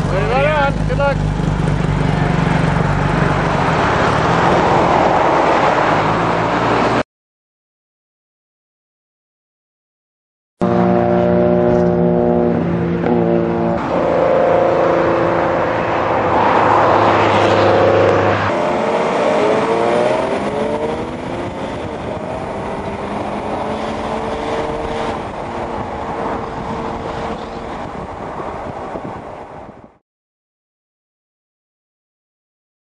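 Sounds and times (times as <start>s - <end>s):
rally car engines revving: 10.6s - 29.2s.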